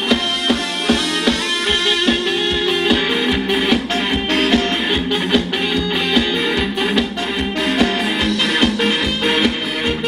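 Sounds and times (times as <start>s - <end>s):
live band dance music: 0.0s - 10.0s
steady drum beat: 0.0s - 10.0s.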